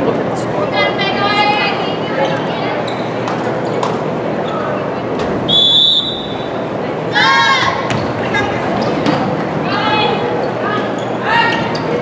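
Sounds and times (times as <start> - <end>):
spectators chattering: 0.0 - 12.0
sneaker squeaks on hardwood floor: 2.8 - 3.8.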